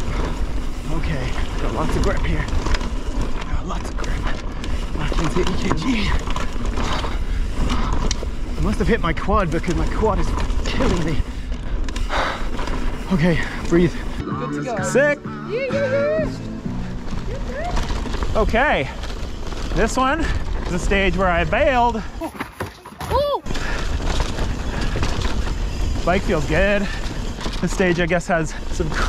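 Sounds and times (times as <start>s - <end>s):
bike frame and chain rattling: 0.0s - 14.2s, 16.5s - 29.0s
wind and trail rumble: 0.0s - 14.2s, 15.5s - 22.3s, 23.2s - 29.0s
bike tyres on dirt: 0.0s - 29.0s
person crying out: 15.4s - 16.3s, 23.0s - 23.5s.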